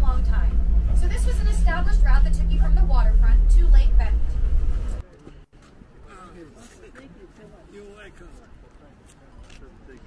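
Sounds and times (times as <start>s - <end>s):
bus engine rumbling: 0.0s - 5.1s.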